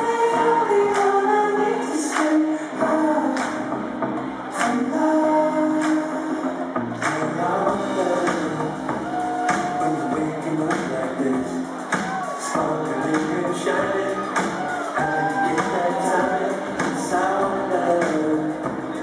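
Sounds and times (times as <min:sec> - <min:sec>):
drum beat: 0:07.7 - 0:19.0.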